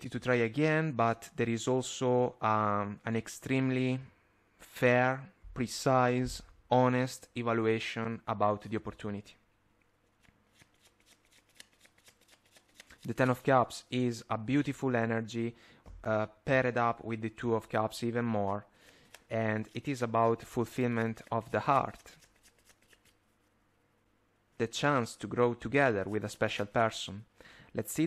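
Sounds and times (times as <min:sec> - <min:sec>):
cards being shuffled: 0:10.1 - 0:13.4, 0:18.8 - 0:23.2.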